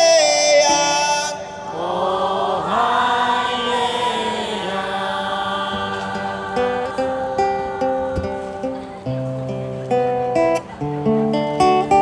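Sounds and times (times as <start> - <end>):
man singing: 0.0 - 7.4
crowd singing along: 0.0 - 9.3
classical guitar picking notes: 5.5 - 12.0.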